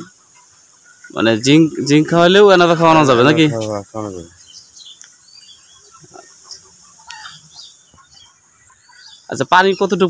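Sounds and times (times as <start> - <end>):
birds chirping: 0.0 - 10.0
faint steady high hiss: 0.0 - 10.0.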